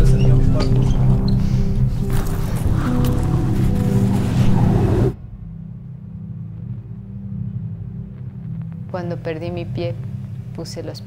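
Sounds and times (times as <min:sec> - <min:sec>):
low music drone: 0:00.0 - 0:11.0.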